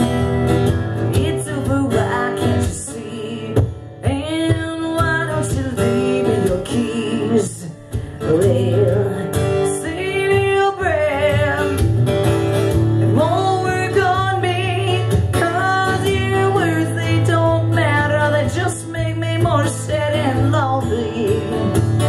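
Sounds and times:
woman singing: 0.0 - 12.1, 12.7 - 22.0
acoustic guitar strumming: 0.0 - 22.0.

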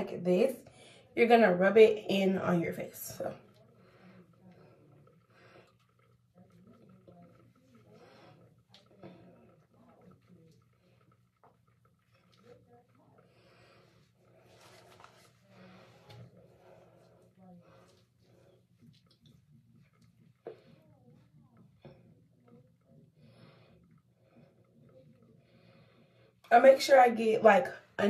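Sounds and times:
light breathing: 0.6 - 1.2, 3.4 - 26.5
soapy hands rubbing face: 13.7 - 16.8.

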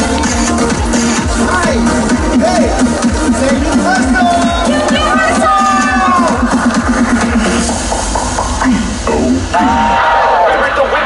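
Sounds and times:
amplified voices: 0.0 - 11.0.

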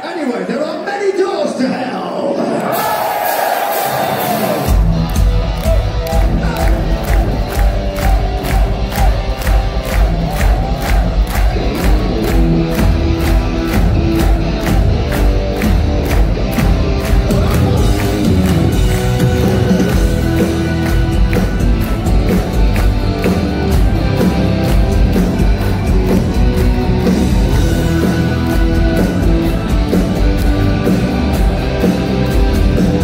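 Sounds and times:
crowd cheering and shouting: 0.0 - 33.0
heavy metal band playing: 1.5 - 33.0
driving drum beat: 3.6 - 33.0.

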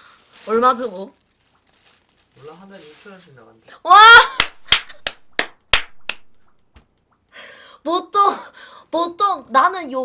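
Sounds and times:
hand claps: 4.3 - 6.6.

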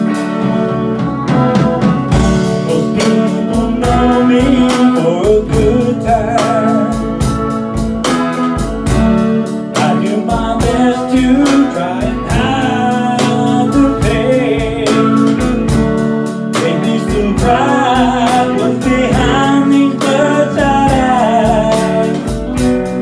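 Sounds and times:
drums steady beat: 0.0 - 23.0
electric guitar playing: 0.0 - 23.0
man singing: 1.4 - 7.6, 9.7 - 23.0.

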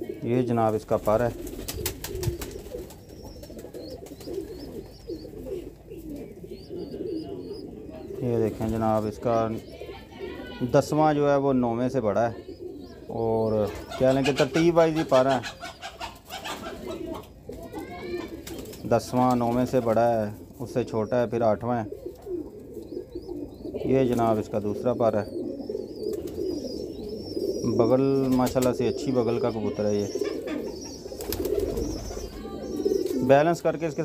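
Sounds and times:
pigeons cooing: 0.0 - 34.0
pigeon rising call: 1.3 - 11.0, 12.3 - 19.0, 24.9 - 34.0.

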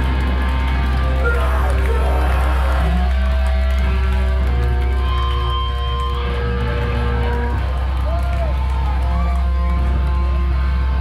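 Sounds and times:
distorted electric guitars: 0.0 - 8.0, 8.7 - 11.0
hardcore band playing live: 0.8 - 7.7.

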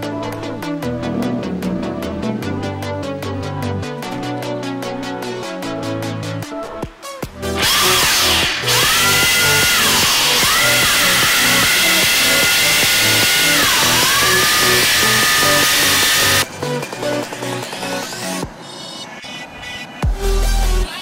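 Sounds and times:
electronic music with steady beat: 0.0 - 21.0.

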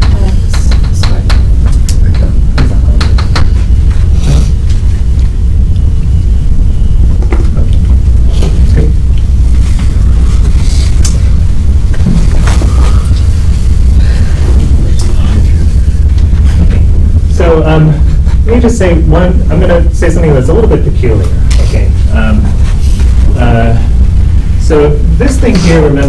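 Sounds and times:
low room hum: 0.0 - 26.0
faint murmurs: 6.6 - 19.1.

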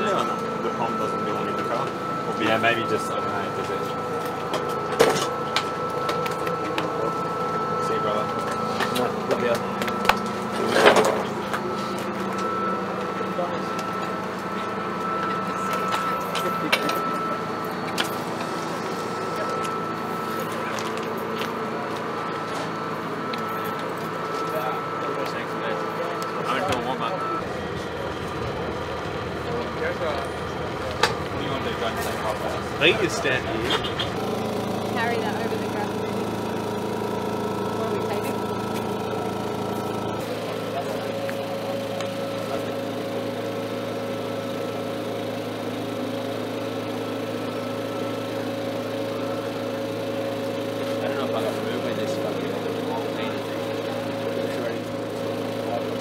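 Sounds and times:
people talking in background: 0.0 - 45.0, 46.8 - 56.0
steady thin whine: 0.0 - 56.0.

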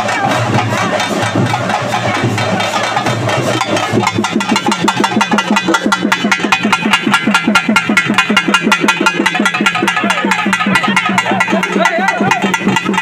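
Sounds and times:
fast steady drumming: 0.0 - 13.0.

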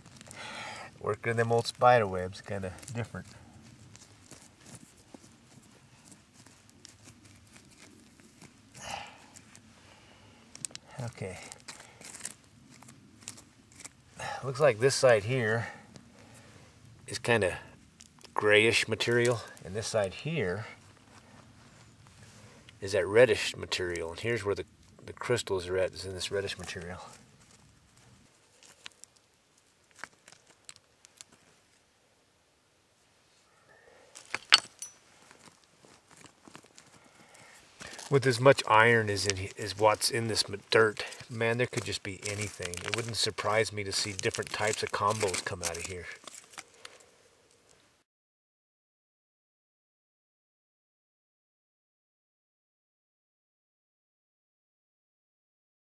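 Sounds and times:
fingers scraping dirt and stones: 0.0 - 0.4, 1.1 - 9.7, 10.5 - 16.5, 18.0 - 31.5, 37.8 - 47.0
dirt scraping under hand: 1.0 - 9.8, 34.2 - 46.7
small stones clicking together: 34.2 - 35.0.

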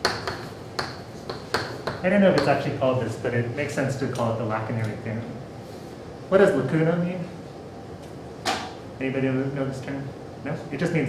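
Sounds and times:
chalk tapping on slate: 0.0 - 2.5.

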